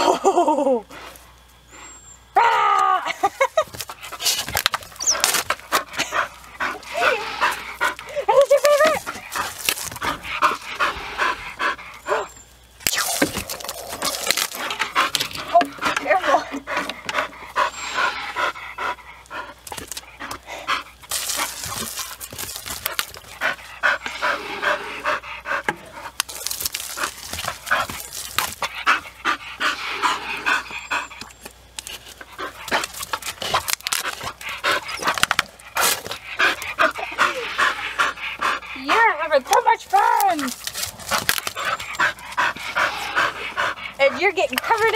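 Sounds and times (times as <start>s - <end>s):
dog panting: 3.9s - 12.4s, 14.5s - 22.2s, 22.9s - 26.2s, 26.9s - 44.9s.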